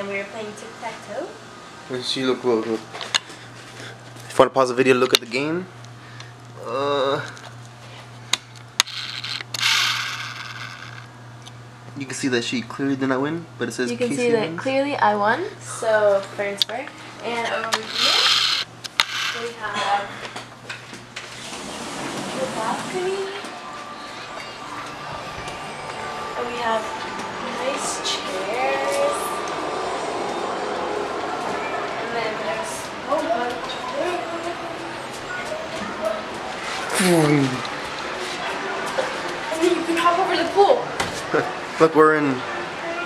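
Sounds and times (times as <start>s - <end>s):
faint high whine: 21.3s - 43.0s
outdoor background roar: 23.4s - 41.8s.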